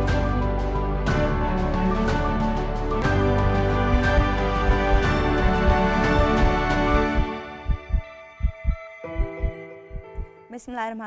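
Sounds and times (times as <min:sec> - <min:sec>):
sustained music chords: 0:02.8 - 0:10.2
heartbeat thumps: 0:03.9 - 0:10.3
woman speaking: 0:10.5 - 0:11.0.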